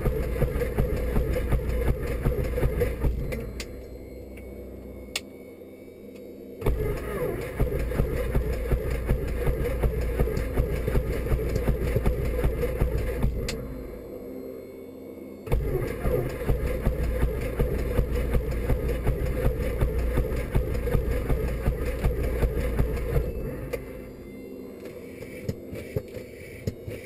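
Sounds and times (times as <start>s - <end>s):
light aircraft engine and propeller: 0.0s - 27.0s
click: 3.3s - 4.5s, 5.1s - 5.3s, 13.4s - 13.6s.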